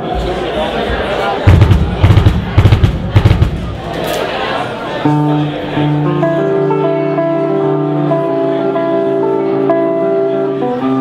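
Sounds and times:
murmuring crowd chatter: 0.0s - 11.0s
loud low drum hits: 1.5s - 3.9s
electric bass and guitar notes: 5.0s - 11.0s.

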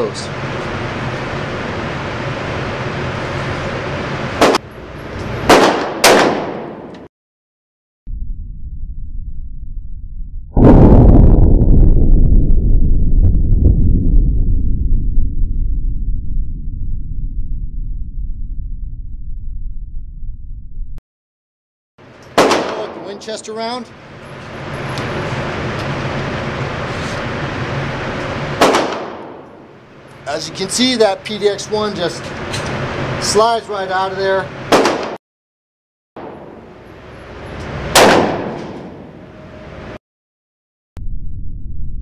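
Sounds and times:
echoing gunshot: 4.4s - 4.6s, 5.5s - 7.0s, 22.3s - 23.4s, 28.6s - 29.7s, 34.7s - 35.2s, 36.2s - 36.7s, 37.9s - 39.1s
slowed-down gunshot rumble: 8.1s - 21.0s, 28.6s - 29.6s, 36.2s - 36.6s, 37.9s - 39.1s.

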